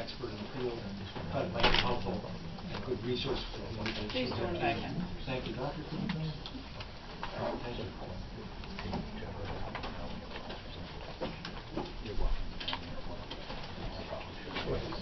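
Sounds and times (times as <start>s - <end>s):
low murmured voices: 0.0s - 15.0s
low room hum: 0.0s - 15.0s.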